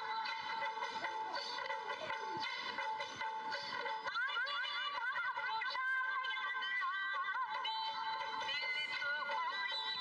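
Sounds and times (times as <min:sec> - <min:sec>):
high singing voice: 0:00.0 - 0:10.0.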